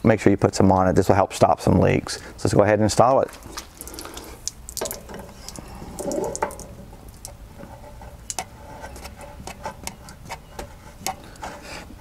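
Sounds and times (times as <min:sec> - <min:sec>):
water trickling: 0:03.1 - 0:07.4.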